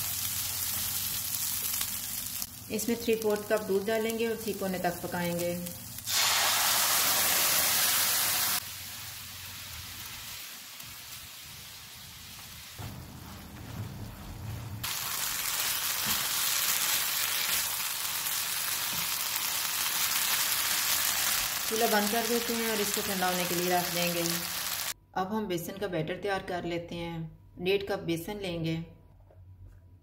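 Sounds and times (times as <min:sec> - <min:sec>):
milk sizzling in a pan: 0:00.0 - 0:02.8, 0:04.4 - 0:13.4, 0:14.8 - 0:25.0.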